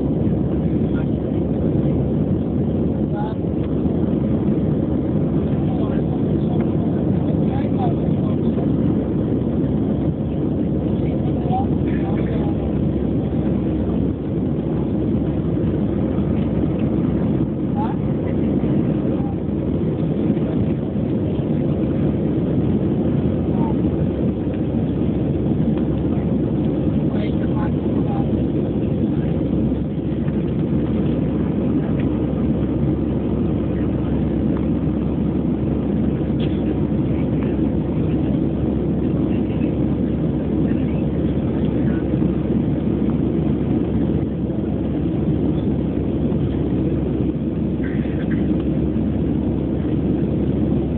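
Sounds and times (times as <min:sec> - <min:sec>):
jet engines roaring in cabin: 0:00.0 - 0:50.9.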